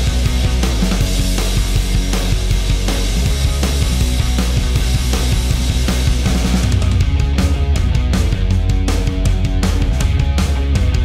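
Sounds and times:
pop-punk rock band playing: 0.0s - 11.0s.

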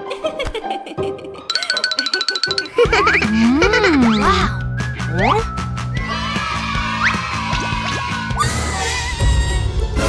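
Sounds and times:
cartoon background music: 0.0s - 10.0s
fast high repeated notes: 5.0s - 5.5s.

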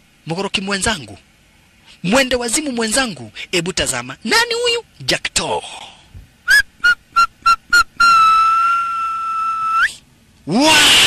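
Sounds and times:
whistle blasts: 6.5s - 10.0s.

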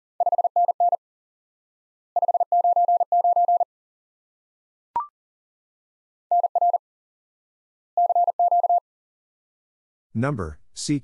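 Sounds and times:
morse code beeps: 0.2s - 1.0s, 2.2s - 3.7s, 6.3s - 6.8s, 8.0s - 8.8s.

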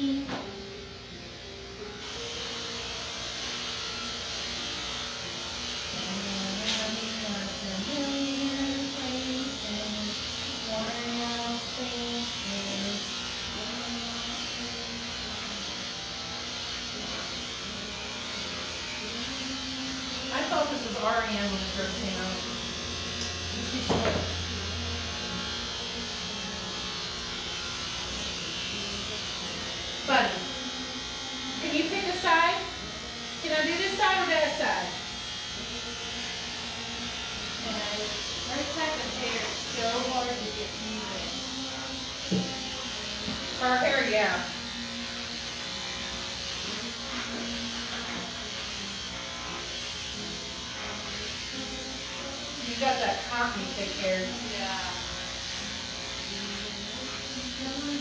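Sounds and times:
electric clippers buzzing: 0.0s - 58.0s
people talking: 20.2s - 22.5s, 23.6s - 24.7s, 28.8s - 30.6s, 31.6s - 35.0s, 37.6s - 44.6s, 51.6s - 55.1s.

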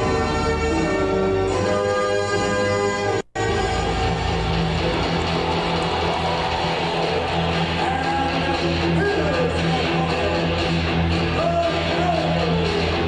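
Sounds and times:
rock music over pa: 3.4s - 13.0s.

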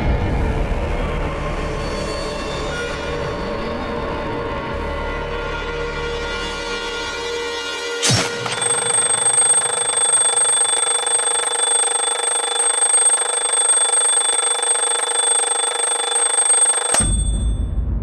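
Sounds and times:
alarm clock bell ringing: 8.4s - 17.8s.

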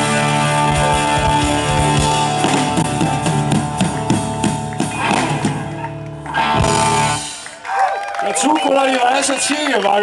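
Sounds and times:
blues rock band playing live: 0.0s - 7.6s.

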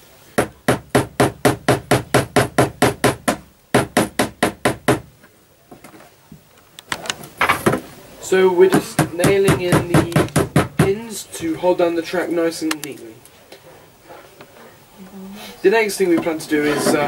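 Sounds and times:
louder knocks: 0.4s - 5.1s, 8.7s - 11.0s.

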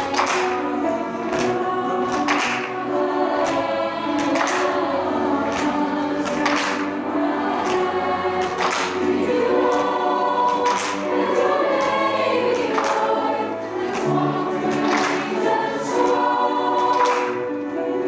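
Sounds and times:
mixed choir singing in parts: 0.0s - 18.0s.

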